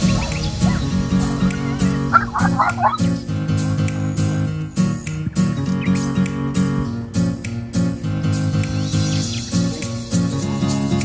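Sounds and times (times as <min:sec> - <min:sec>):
guitar music: 0:00.0 - 0:11.0
dog yipping: 0:02.1 - 0:03.1.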